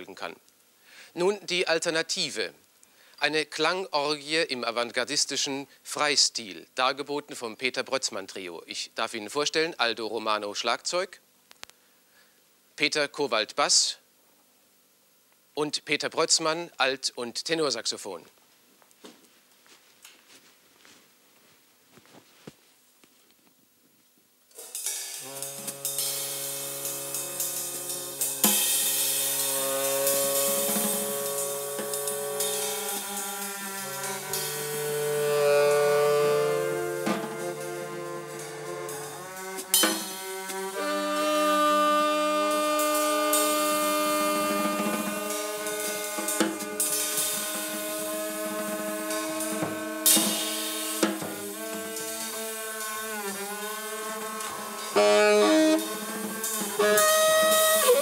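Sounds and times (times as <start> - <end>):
loose drum-kit playing: 24.6 - 41.2, 42.5 - 53.2, 54.0 - 58.0
cymbal crashes: 24.6 - 58.0
saxophone long bending notes: 24.6 - 58.0
bowed double bass: 31.8 - 50.0.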